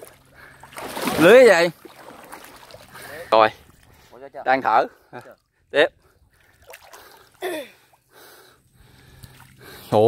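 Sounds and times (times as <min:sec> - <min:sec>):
water splashing and trickling: 0:00.0 - 0:10.0.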